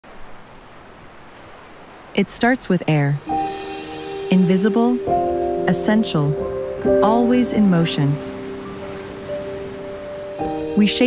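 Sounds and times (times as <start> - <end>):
surf: 0.0 - 11.0
wind: 0.0 - 11.0.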